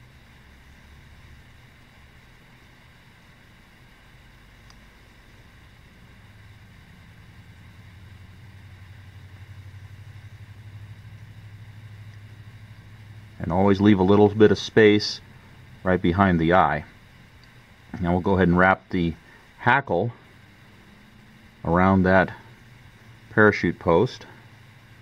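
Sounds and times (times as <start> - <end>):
low motor-like hum: 0.0 - 25.0.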